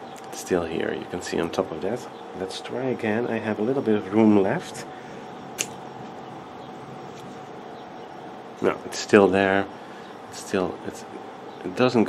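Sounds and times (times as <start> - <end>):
background hum and hiss: 0.0 - 12.0
faint constant tone: 0.0 - 12.0.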